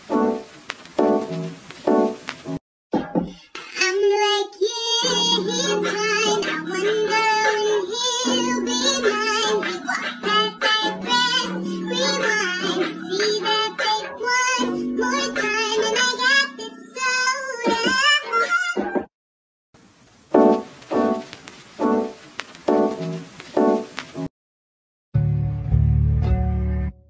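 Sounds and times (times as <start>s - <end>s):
high-pitched vocal singing: 3.6s - 19.0s.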